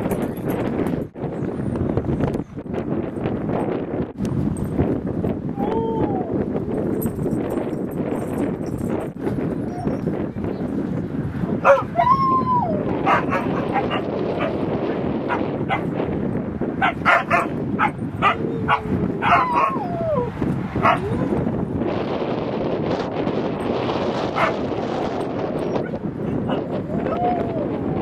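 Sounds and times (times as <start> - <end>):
dog whining: 9.6 - 10.1, 11.7 - 14.6, 18.2 - 21.3
dogs barking and yipping: 11.6 - 16.0, 16.8 - 21.4, 24.1 - 27.8.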